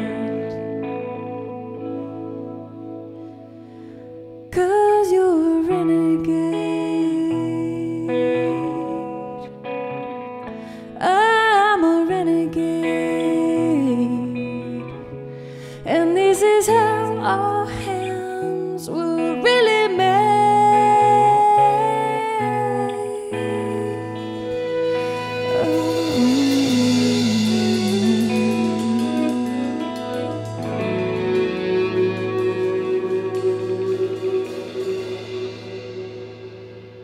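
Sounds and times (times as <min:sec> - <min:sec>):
bass guitar: 0:00.0 - 0:04.6, 0:19.9 - 0:37.0
electric guitar: 0:00.0 - 0:37.0
woman singing long note: 0:17.6 - 0:36.8
band's final chord: 0:24.5 - 0:37.0.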